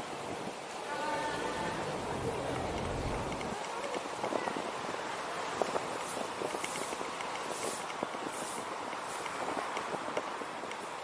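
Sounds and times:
tyres rumbling on paving: 0:00.8 - 0:05.0.

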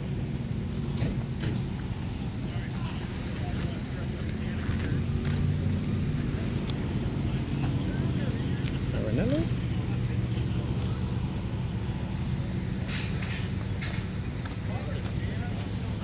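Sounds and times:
car engine idling: 0:00.0 - 0:16.0
people talking: 0:00.9 - 0:11.6, 0:13.6 - 0:16.0.

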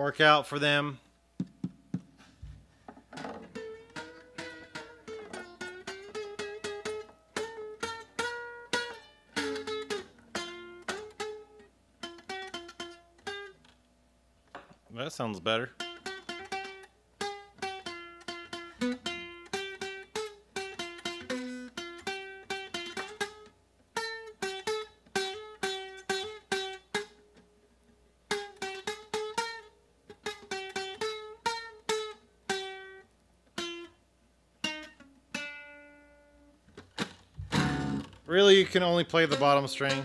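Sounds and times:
nylon-string guitar picked notes: 0:03.2 - 0:13.8, 0:15.2 - 0:27.6, 0:28.3 - 0:34.0, 0:34.6 - 0:40.0.

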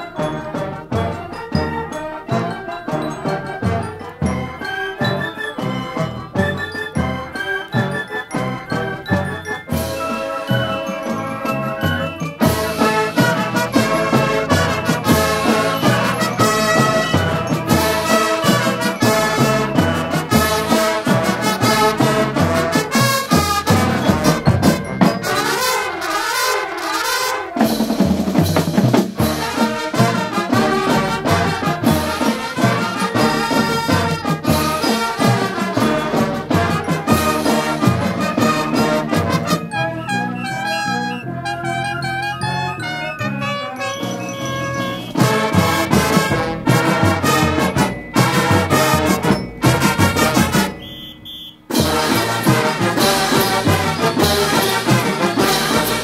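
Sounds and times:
marching band playing: 0:00.0 - 0:56.0.

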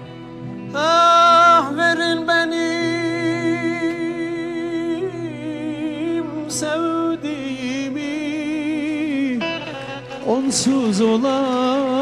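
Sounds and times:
sustained musical accompaniment: 0:00.0 - 0:12.0.

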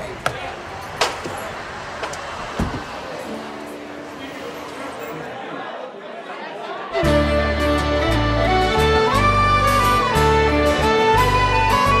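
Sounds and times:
car door shutting: 0:02.0 - 0:03.0.

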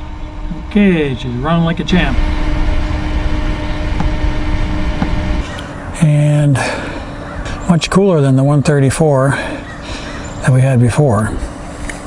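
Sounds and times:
low rumble: 0:00.0 - 0:06.0
computer cooling fan humming: 0:00.0 - 0:12.0.

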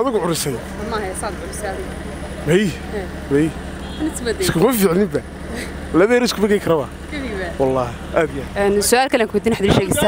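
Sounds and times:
street traffic hum: 0:00.0 - 0:10.0
man speaking: 0:02.4 - 0:03.6, 0:04.6 - 0:05.3, 0:05.9 - 0:06.9, 0:07.6 - 0:08.6.

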